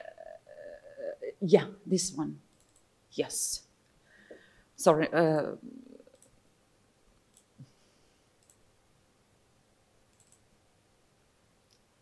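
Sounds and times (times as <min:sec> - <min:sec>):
computer mouse clicks: 0:02.5 - 0:02.9, 0:06.1 - 0:06.4, 0:07.3 - 0:07.7, 0:08.4 - 0:08.6, 0:10.1 - 0:10.5.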